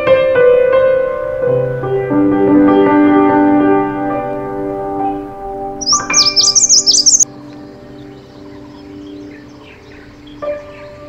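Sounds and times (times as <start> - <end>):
soft background music: 0.5 - 11.0
bird chirping: 5.8 - 7.3.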